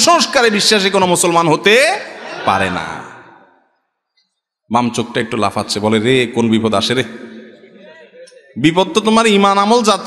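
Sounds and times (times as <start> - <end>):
man's voice over public address: 0.0 - 3.1, 4.7 - 10.0.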